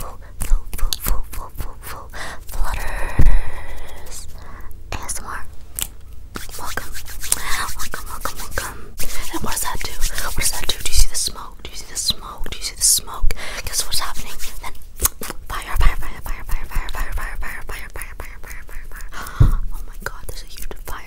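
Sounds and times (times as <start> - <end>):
person whispering: 0.0 - 5.5, 15.5 - 21.0
fingers rubbing and flicking: 5.0 - 11.2, 13.7 - 21.0.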